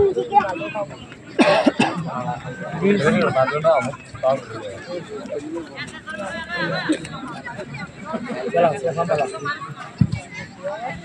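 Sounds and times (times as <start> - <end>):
men talking: 0.0 - 9.7.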